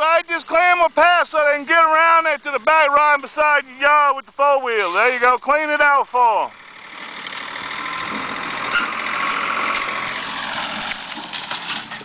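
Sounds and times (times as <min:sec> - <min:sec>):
tractor engine running: 0:00.0 - 0:12.0
small clicks and rattles: 0:06.8 - 0:12.0.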